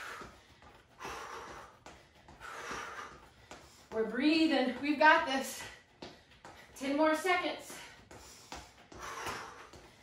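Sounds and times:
woman breathing hard: 0.0s - 4.0s, 7.7s - 10.0s.

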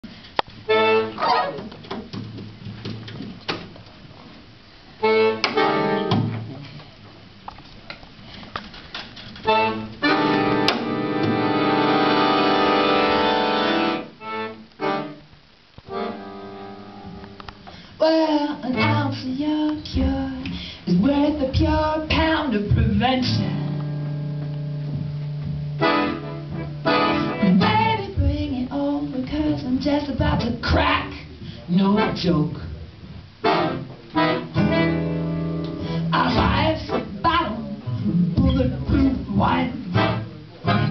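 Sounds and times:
accordion playing chords: 0.7s - 1.6s, 5.0s - 6.2s, 9.4s - 15.3s, 15.9s - 17.6s, 23.5s - 28.1s, 33.4s - 37.2s, 39.7s - 40.9s.

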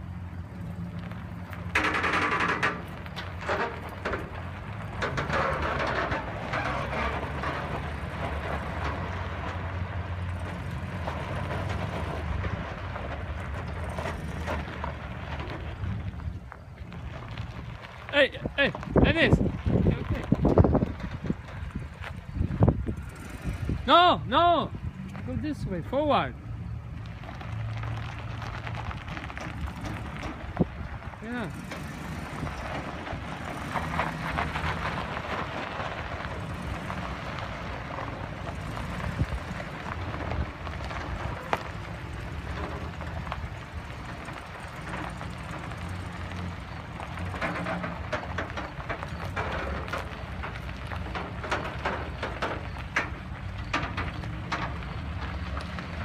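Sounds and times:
trailer rolling over gravel: 0.0s - 56.0s
truck engine running: 0.0s - 56.0s.

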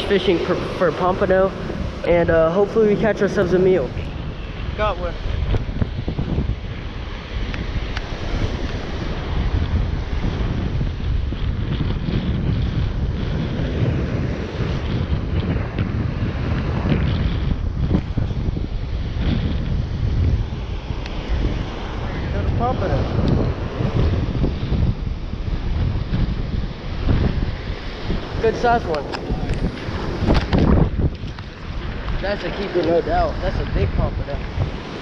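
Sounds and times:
surf breaking on shore: 0.0s - 35.0s
wind buffeting microphone: 0.0s - 35.0s.

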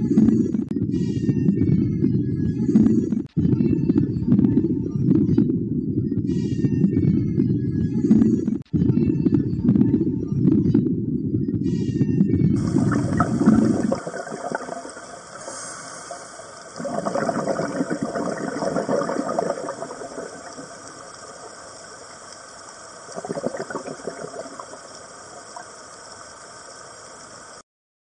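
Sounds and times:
deep water rumble: 0.0s - 21.6s
gushing gurgling water: 12.6s - 27.6s
steady hiss: 12.6s - 27.6s.

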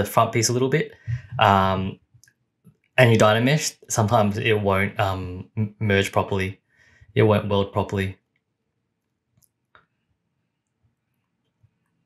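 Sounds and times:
man speaking: 0.0s - 2.0s, 3.0s - 6.5s, 7.2s - 8.1s.

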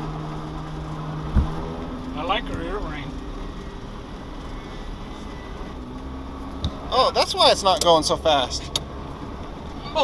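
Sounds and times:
engine and tyre rumble: 0.0s - 10.0s
short thump: 1.2s - 1.7s.

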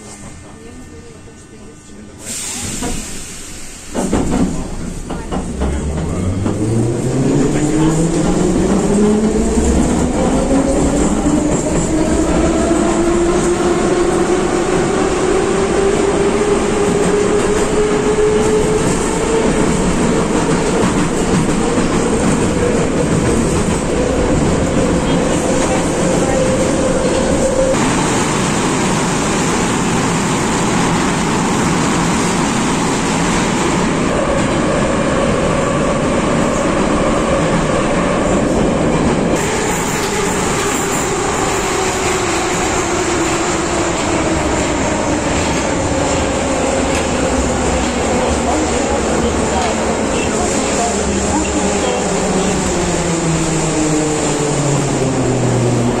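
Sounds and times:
wheels rumbling on rail: 0.0s - 56.0s.

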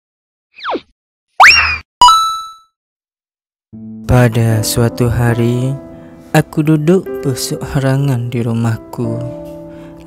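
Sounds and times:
bell-like ding: 2.0s - 2.6s
music: 3.8s - 10.0s.

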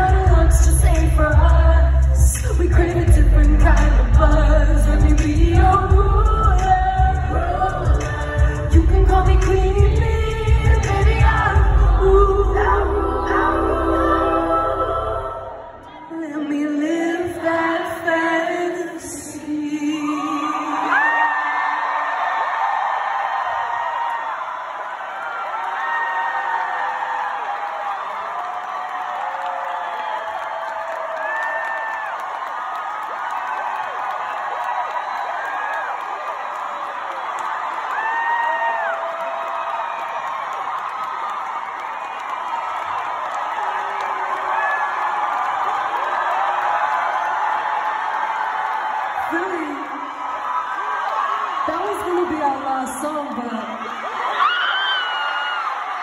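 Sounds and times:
concert crowd cheering: 0.0s - 56.0s
high whoops and screams: 20.1s - 52.3s, 53.6s - 56.0s.

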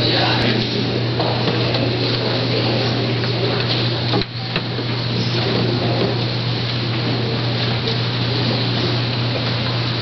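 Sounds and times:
low even hum: 0.0s - 10.0s.

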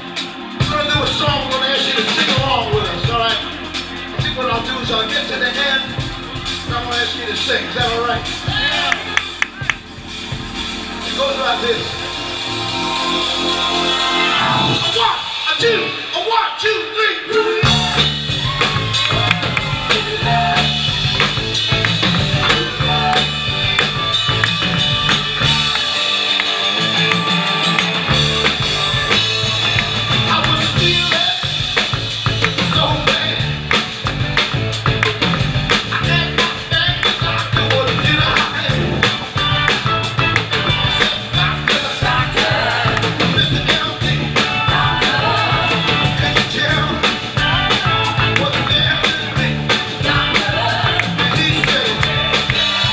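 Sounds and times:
drum kit steady beat: 0.0s - 16.1s, 16.7s - 52.9s
live band playing: 0.0s - 52.9s.

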